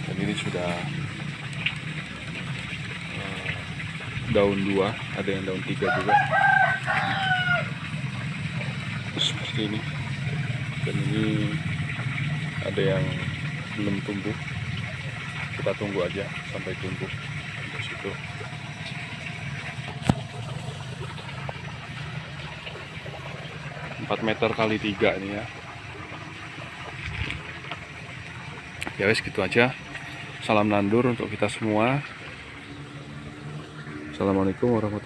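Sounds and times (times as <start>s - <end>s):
rooster crowing: 5.8s - 7.9s
steady low hum: 7.6s - 35.0s.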